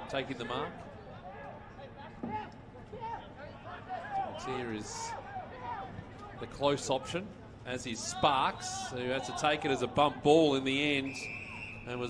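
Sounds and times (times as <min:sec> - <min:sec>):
open-air football ground ambience: 0:00.0 - 0:12.0.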